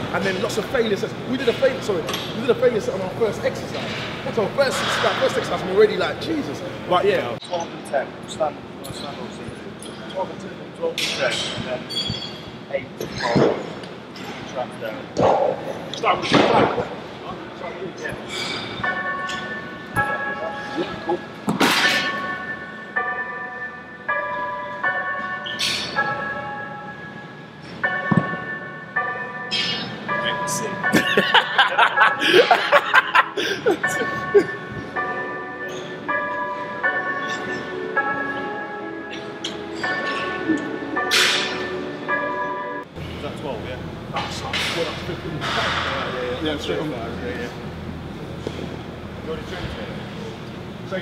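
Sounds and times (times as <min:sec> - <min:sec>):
background music sustained notes: 0:18.6 - 0:44.2.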